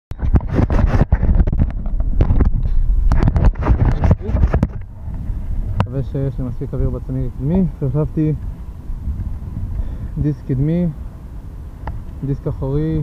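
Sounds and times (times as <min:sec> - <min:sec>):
low rumbling: 0:00.1 - 0:13.0.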